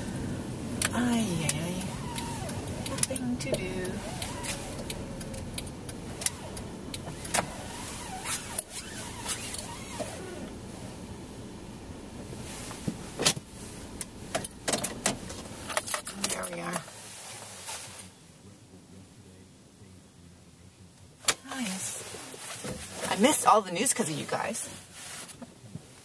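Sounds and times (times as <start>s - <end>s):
car engine idling: 0.0s - 25.9s.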